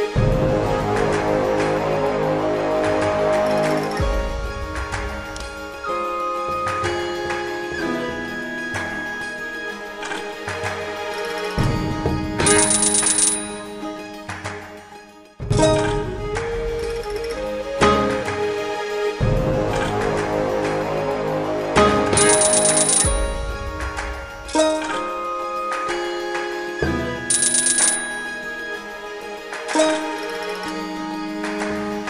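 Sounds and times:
game background music: 0:00.0 - 0:32.0
slot reels landing thump: 0:12.4 - 0:13.7, 0:22.2 - 0:23.2, 0:27.3 - 0:28.4
high ringing ticks: 0:12.4 - 0:13.8, 0:22.2 - 0:23.3, 0:27.3 - 0:28.4
high-pitched coin-like chimes: 0:12.4 - 0:13.8, 0:22.2 - 0:23.3, 0:27.3 - 0:28.4.

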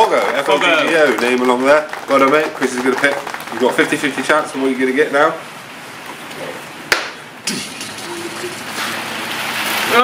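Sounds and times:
sharp tap: 0:06.9 - 0:07.2
rain on the roof: 0:07.6 - 0:10.0.

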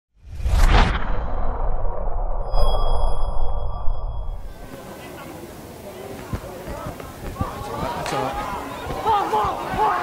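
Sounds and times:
deep rumble: 0:00.2 - 0:04.7
loud whoosh: 0:00.2 - 0:04.7.

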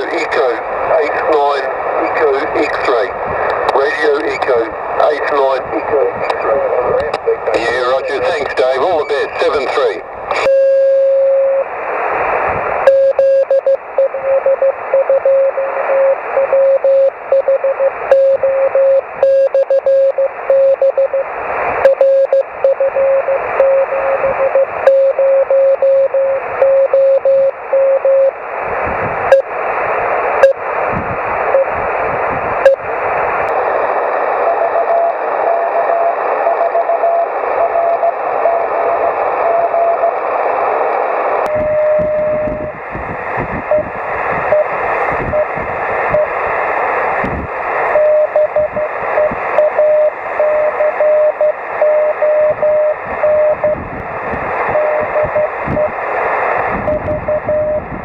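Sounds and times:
radio crackles: 0:00.0 - 0:58.0
radio static hiss: 0:00.0 - 0:58.0
morse code tone: 0:10.4 - 0:11.7, 0:12.9 - 0:28.4, 0:41.5 - 0:42.7, 0:47.9 - 0:53.8, 0:54.7 - 0:55.9, 0:56.9 - 0:57.9.

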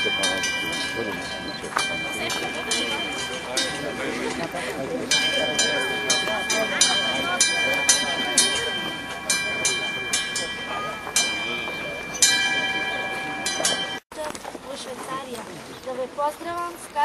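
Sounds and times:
church bells ringing: 0:00.0 - 0:14.0
murmur of crowd: 0:00.0 - 0:17.0.

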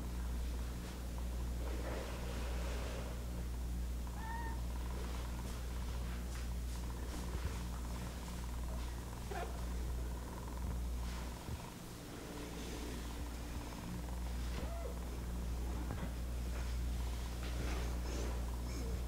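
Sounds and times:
cat purring: 0:04.0 - 0:19.0
cat meowing: 0:04.1 - 0:04.6.

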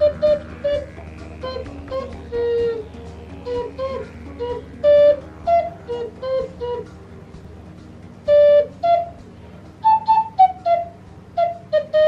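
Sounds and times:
ocarina short notes: 0:00.0 - 0:12.0.

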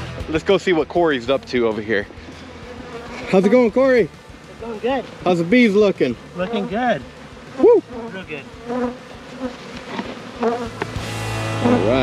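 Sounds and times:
background guitar music: 0:00.0 - 0:12.0
bees buzzing: 0:00.0 - 0:12.0.

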